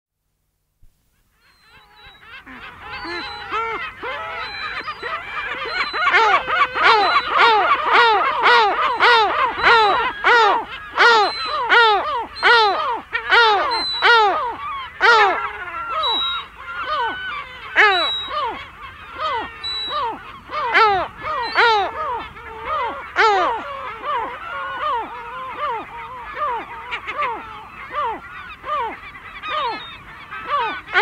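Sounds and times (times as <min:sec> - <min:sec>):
gull harsh alarm calls: 0:01.4 - 0:31.0.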